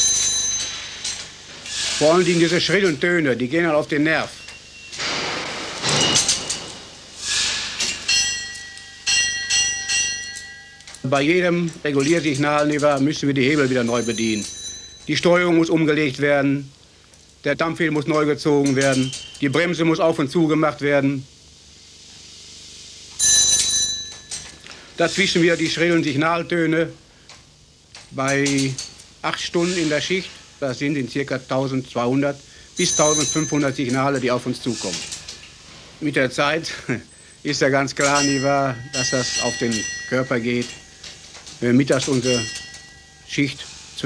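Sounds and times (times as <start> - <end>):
shrill signal bell ringing: 0.0 - 1.4, 3.6 - 5.0, 7.9 - 16.1, 18.9 - 19.9, 23.2 - 25.7, 32.8 - 34.9, 37.5 - 44.0
steam hiss: 0.8 - 9.1, 24.6 - 26.2, 29.4 - 36.2, 43.2 - 44.0.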